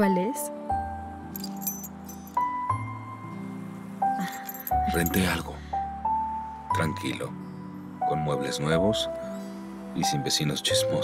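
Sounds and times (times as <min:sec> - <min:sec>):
background music of long notes: 0:00.0 - 0:11.0
keys jingling: 0:01.3 - 0:02.5, 0:04.2 - 0:05.2.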